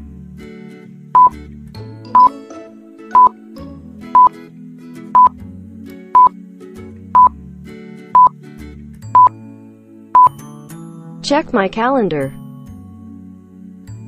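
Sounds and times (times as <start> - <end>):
soft background music: 0.0 - 14.0
electronic countdown beeps: 1.2 - 1.4, 5.2 - 5.4.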